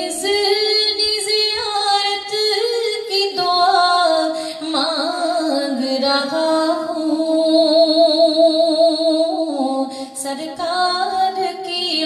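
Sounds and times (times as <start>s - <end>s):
woman singing unaccompanied: 0.0s - 12.0s.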